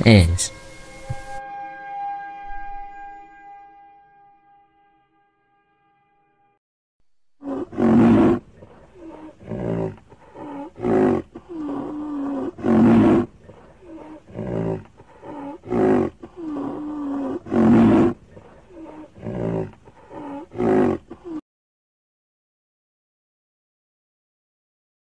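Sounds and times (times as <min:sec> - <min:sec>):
dinosaur roars and grunts: 0:07.4 - 0:21.4
low moans: 0:07.4 - 0:21.4.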